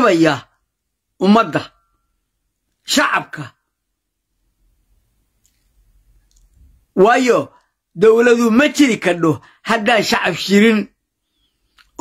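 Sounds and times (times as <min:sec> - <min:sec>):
faint mouth clicks: 0:11.7 - 0:12.0.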